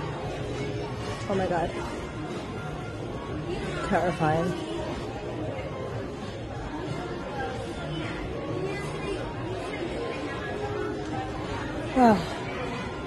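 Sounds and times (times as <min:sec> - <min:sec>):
murmur of distant voices: 0:00.0 - 0:13.0.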